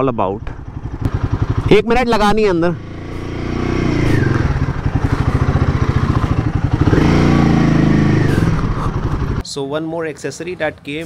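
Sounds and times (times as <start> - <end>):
motorcycle engine running: 0.4 - 9.4.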